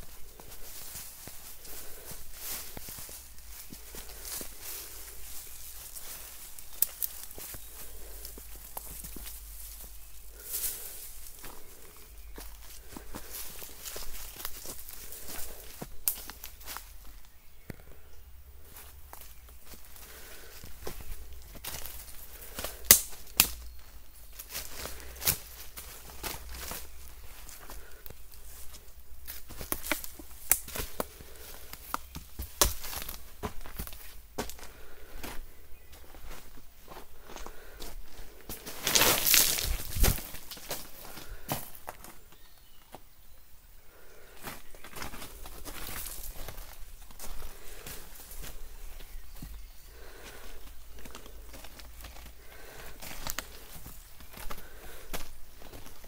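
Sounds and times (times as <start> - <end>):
footsteps on leaves and gravel: 0.0 - 56.0
twigs snapping: 5.8 - 9.3, 12.4 - 16.8, 20.8 - 23.8, 29.3 - 34.6, 38.7 - 40.8.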